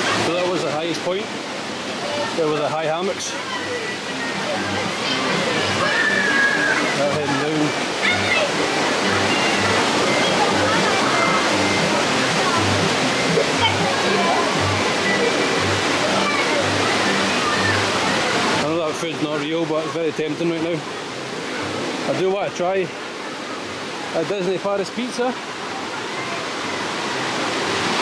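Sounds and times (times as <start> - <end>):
waterfall rushing: 0.0 - 28.0.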